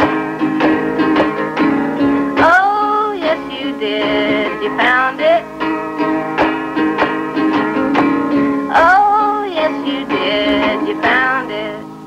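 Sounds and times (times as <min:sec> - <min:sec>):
guitar accompaniment: 0:00.0 - 0:12.0.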